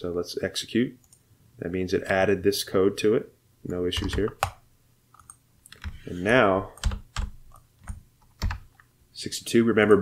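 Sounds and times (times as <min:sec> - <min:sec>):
keyboard and mouse clicks: 0:03.7 - 0:06.0.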